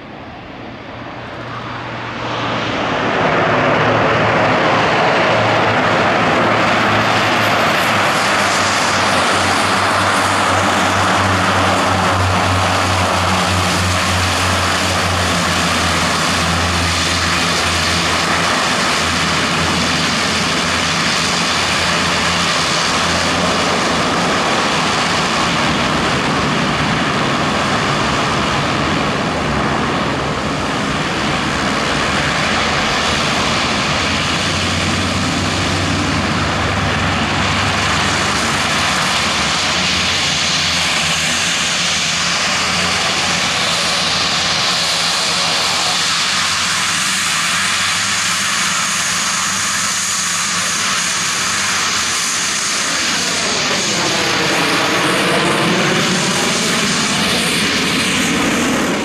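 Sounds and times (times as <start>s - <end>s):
turboprop engines running: 0.0s - 59.0s.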